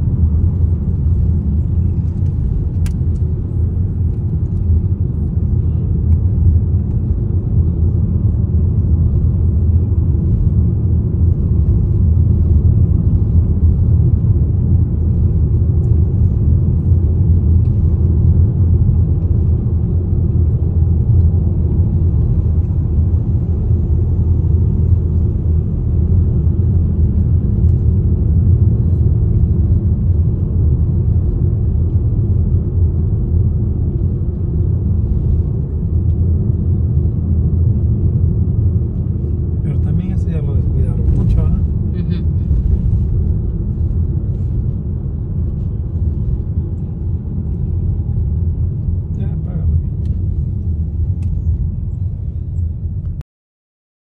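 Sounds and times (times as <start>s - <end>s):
car road rumble inside cabin: 0.0s - 53.2s.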